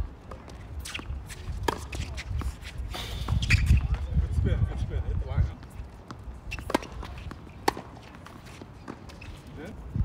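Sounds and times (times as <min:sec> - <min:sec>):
tennis ball struck by rackets: 0:00.3 - 0:02.6, 0:06.0 - 0:09.3.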